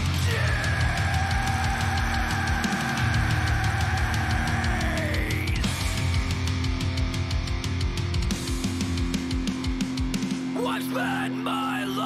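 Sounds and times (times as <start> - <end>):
heavy rock band playing: 0.0 - 12.0.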